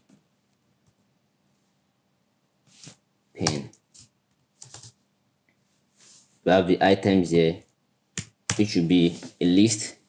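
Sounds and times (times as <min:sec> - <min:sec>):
computer keyboard keystrokes: 0:04.6 - 0:05.0.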